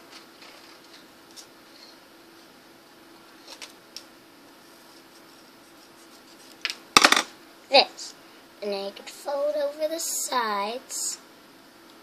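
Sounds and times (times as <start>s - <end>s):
girl speaking: 7.7s - 11.2s.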